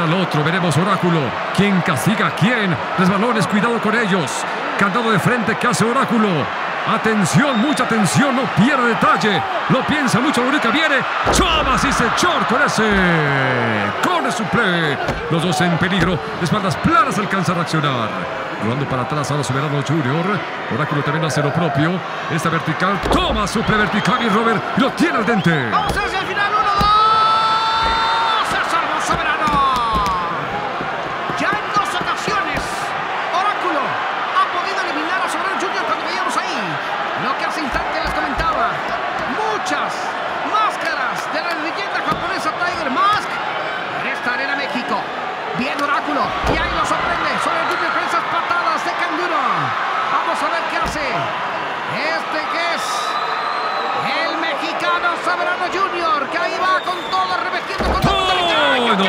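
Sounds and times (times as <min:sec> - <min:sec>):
crowd shouting and chanting: 0:00.0 - 0:59.0
bodies thudding on ring canvas: 0:25.8 - 0:31.4.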